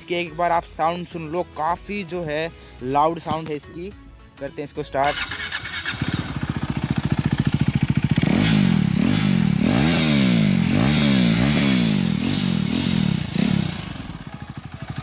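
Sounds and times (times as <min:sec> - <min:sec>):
motorcycle engine revving: 0:05.0 - 0:15.0.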